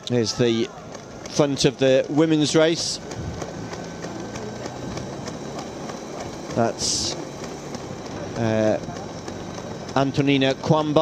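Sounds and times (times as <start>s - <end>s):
noisy outdoor background: 0.0s - 11.0s
vehicle engine hum: 0.0s - 11.0s.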